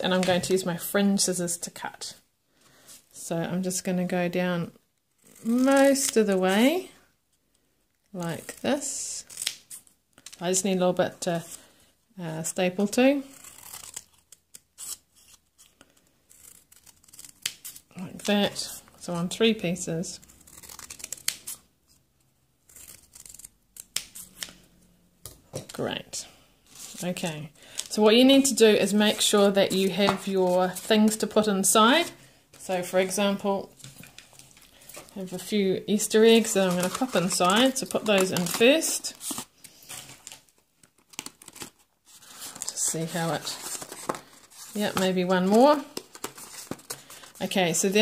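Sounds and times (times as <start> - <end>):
foil crinkling and rustling: 36.4 - 45.1.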